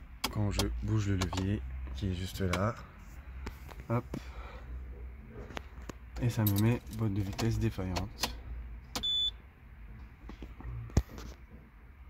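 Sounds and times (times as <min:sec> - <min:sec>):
short high dashboard beep: 0:09.0 - 0:09.4.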